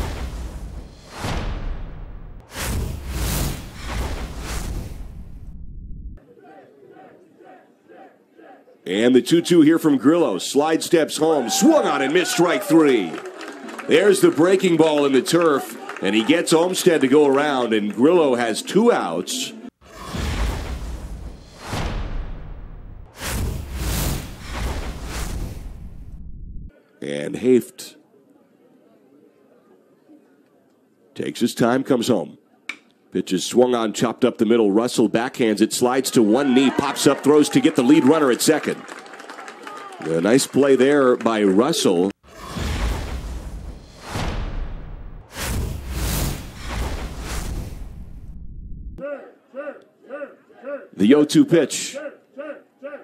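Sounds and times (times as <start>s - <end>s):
deep bass rumble: 0.0s - 6.2s, 20.4s - 26.7s, 43.2s - 49.0s
whooshing sound effects: 0.0s - 6.2s, 19.8s - 26.7s, 42.3s - 49.0s
faint crowd noise: 6.2s - 19.7s, 26.7s - 33.2s.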